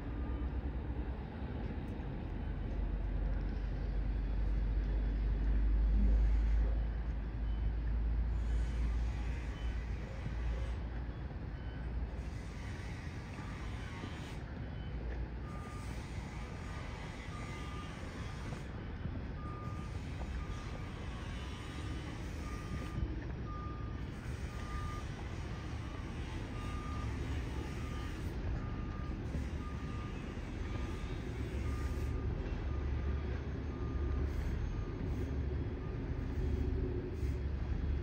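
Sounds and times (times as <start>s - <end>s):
reversing alarm beeping: 5.9s - 37.5s.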